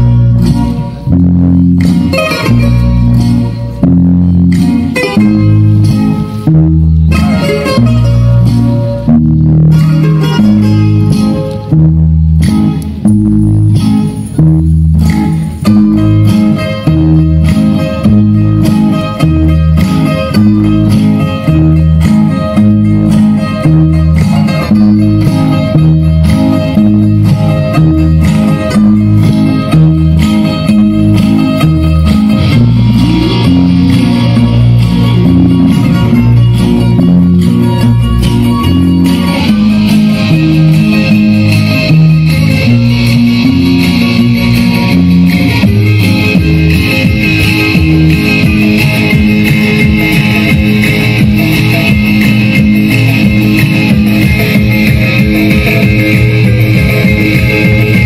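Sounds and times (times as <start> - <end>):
dance music over loudspeakers: 0.0 - 58.0.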